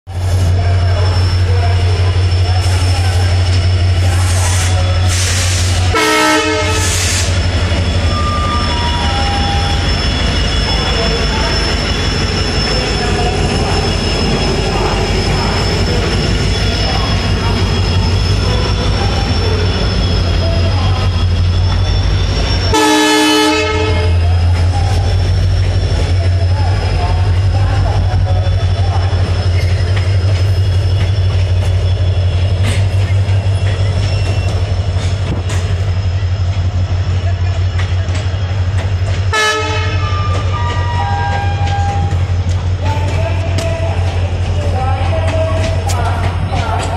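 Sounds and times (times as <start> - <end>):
train rumbling past: 0.1 - 46.9
train horn blasts: 5.8 - 7.3, 22.7 - 24.2, 39.3 - 42.2.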